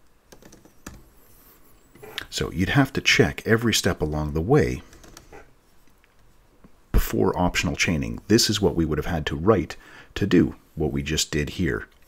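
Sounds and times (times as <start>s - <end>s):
keyboard typing: 0.3s - 1.1s.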